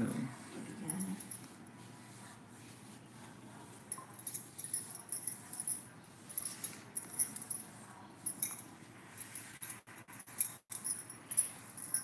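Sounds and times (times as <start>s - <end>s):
bangles jingling: 0.8s - 1.5s, 3.9s - 12.0s.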